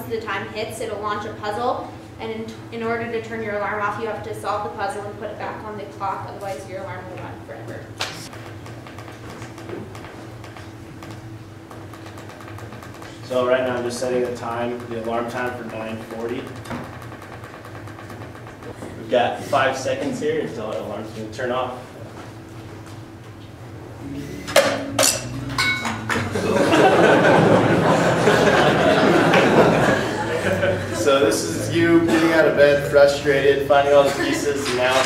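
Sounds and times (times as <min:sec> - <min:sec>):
low hum of room tone: 0:00.0 - 0:35.0.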